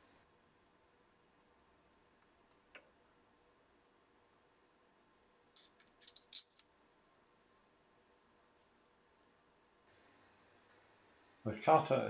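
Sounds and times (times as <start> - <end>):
small steel parts clicking: 5.6 - 6.7.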